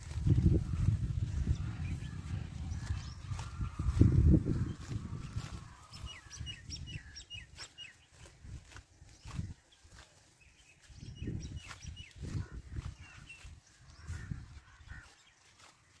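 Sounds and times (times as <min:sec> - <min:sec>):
rustling of leafy plants: 0:00.0 - 0:16.0
small bird chirping: 0:00.2 - 0:15.7.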